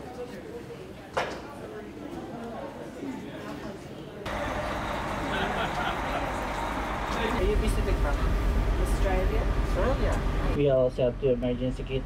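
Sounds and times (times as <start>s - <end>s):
passengers talking: 0.0s - 12.0s
bus engine rumbling: 4.3s - 12.0s.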